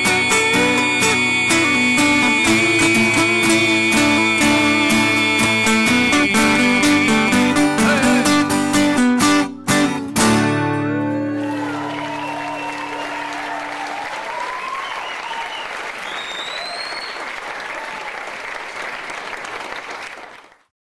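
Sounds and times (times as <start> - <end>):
strummed acoustic guitar chord: 0.0 - 13.1
audience applauding and cheering: 10.9 - 20.7
whistles: 11.7 - 18.1.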